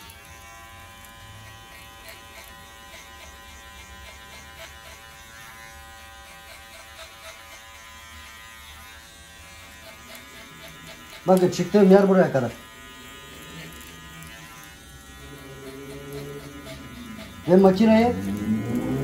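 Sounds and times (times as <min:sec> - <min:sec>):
electric hair clipper running: 0:00.0 - 0:19.0.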